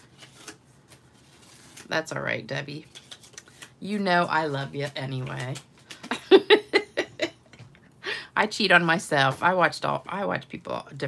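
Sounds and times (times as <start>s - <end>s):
paper rustles and ticks: 2.9s - 6.2s.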